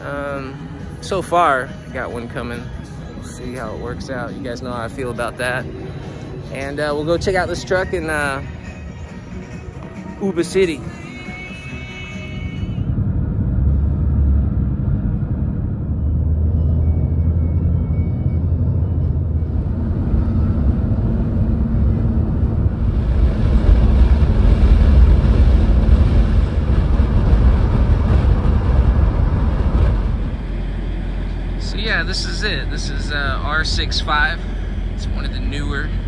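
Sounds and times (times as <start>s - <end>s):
car road rumble: 0.0s - 36.0s.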